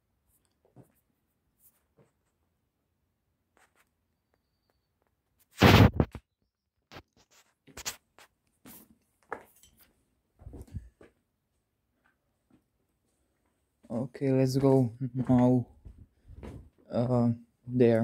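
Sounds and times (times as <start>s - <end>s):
footsteps crunching on rubble: 14.6s - 16.8s.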